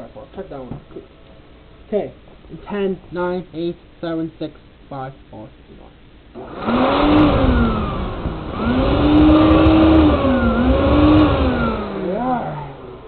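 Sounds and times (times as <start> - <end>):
vacuum cleaner motor whine: 6.4 - 13.0.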